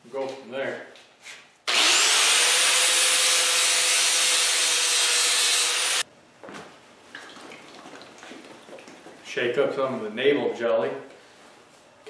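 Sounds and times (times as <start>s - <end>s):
angle grinder grinding metal: 1.7s - 6.0s.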